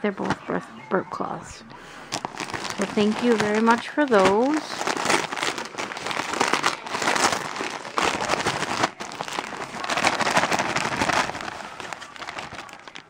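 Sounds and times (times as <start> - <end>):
wrapping paper crinkling: 1.9 - 13.0.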